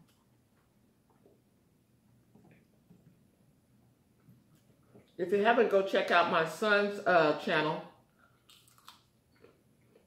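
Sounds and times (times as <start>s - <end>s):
person biting and chewing food: 8.3s - 10.0s.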